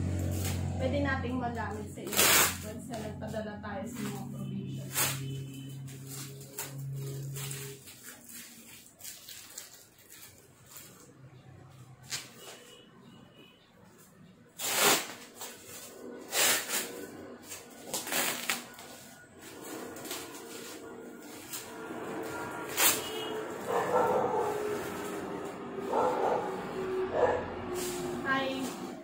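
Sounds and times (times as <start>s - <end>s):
packing tape peeling and tearing: 2.0s - 2.8s, 4.9s - 11.1s, 14.6s - 23.8s
bubble wrap crinkling: 3.9s - 11.3s, 14.6s - 25.6s.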